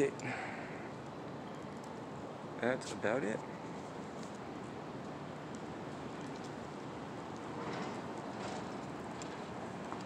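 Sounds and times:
city street hiss: 0.0s - 10.0s.

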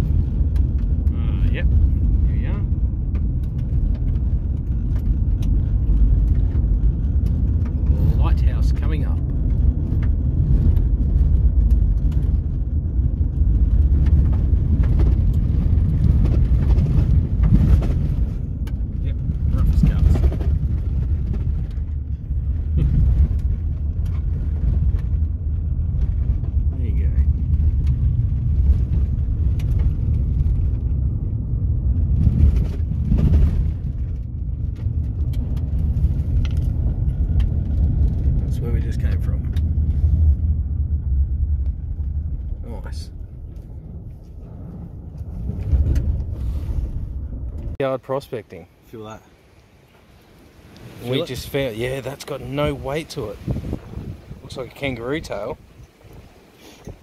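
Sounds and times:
car driving on rough dirt track: 0.0s - 57.0s
wind buffeting car: 0.0s - 57.0s.

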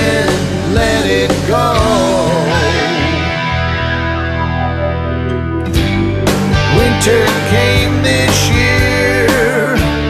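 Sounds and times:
distorted electric guitar chords: 0.0s - 10.0s
low bass notes: 0.0s - 10.0s.

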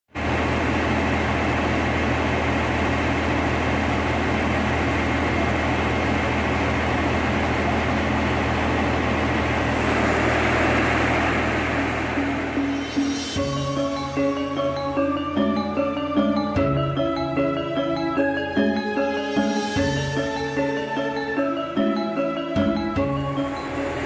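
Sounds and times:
diesel engine running: 0.1s - 24.0s.

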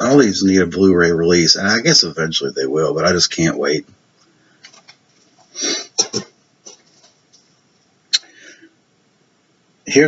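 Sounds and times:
man clearing his throat: 5.7s - 6.4s
man coughing: 5.7s - 6.4s.

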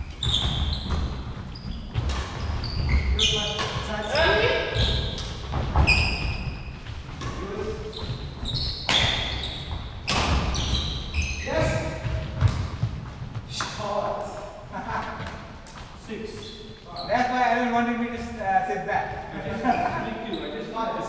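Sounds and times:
shoes squeaking on court: 0.0s - 17.4s, 19.1s - 20.8s
racket hitting shuttlecock: 8.8s - 9.4s, 10.0s - 10.7s.

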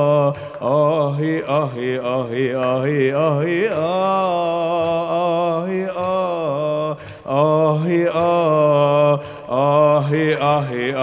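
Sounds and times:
man singing vocal improvisation: 0.0s - 11.0s
singer breathing: 0.3s - 0.6s, 7.0s - 7.3s, 9.2s - 9.6s.

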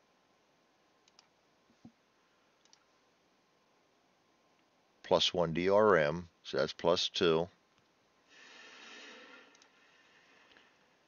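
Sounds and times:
faint computer mouse clicks: 1.0s - 2.0s, 2.6s - 2.9s, 9.5s - 9.8s.

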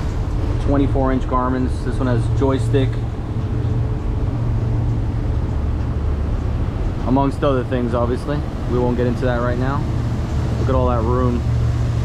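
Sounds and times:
outboard engines humming: 0.0s - 12.0s
water against hull: 0.0s - 12.0s.

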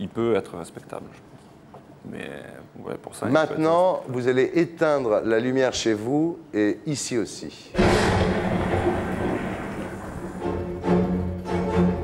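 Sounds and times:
loud rumbling crash: 7.8s - 11.0s
low bowed-string music: 10.4s - 12.0s.

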